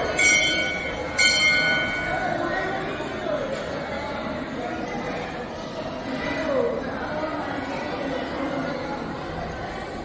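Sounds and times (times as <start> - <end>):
temple bell ringing: 0.0 - 2.9
faint crowd chatter: 0.0 - 10.0.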